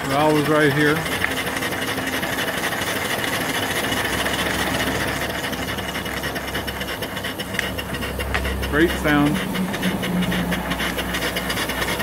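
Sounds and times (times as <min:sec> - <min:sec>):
steam engine clatter: 0:00.0 - 0:12.0
steam hissing: 0:00.0 - 0:12.0.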